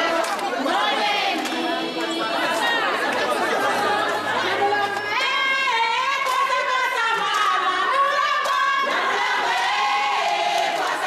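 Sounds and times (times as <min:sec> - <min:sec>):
crowd talking and singing: 0:00.0 - 0:11.0.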